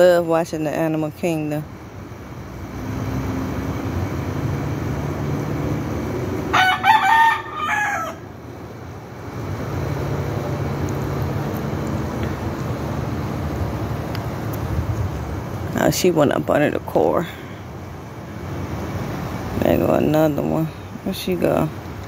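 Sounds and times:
steady low hum: 0.0 - 22.0
rooster crowing: 6.5 - 8.4.

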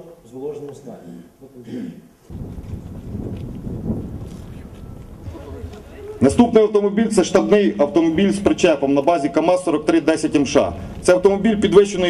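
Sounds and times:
wind buffeting microphone: 2.3 - 12.0.

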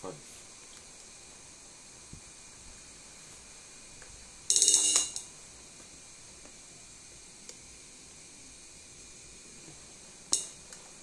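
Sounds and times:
electronic cymbal pad rattle: 0.8 - 11.0.

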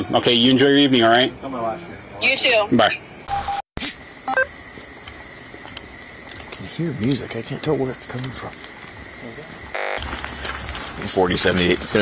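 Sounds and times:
low background noise: 4.0 - 12.0.

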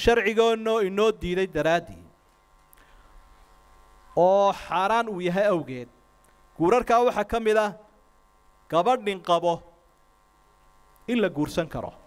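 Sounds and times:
man speaking into a microphone: 0.0 - 2.2, 4.2 - 6.0, 6.6 - 7.9, 8.7 - 9.8, 11.0 - 12.0
faint electrical hum: 0.0 - 12.0.

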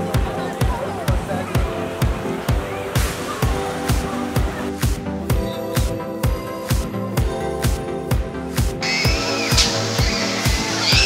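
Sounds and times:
background music with steady beat: 0.0 - 11.0
high-pitched hiss: 8.8 - 11.0
shrill gliding tones: 8.8 - 11.0.

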